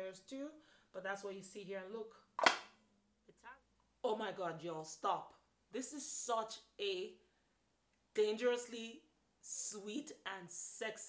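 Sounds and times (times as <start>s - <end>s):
wooden box snapping shut: 2.4s - 2.6s.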